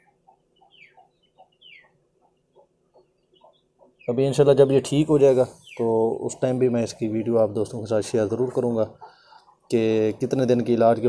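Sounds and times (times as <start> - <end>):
chicken clucking softly: 0.0 - 11.0.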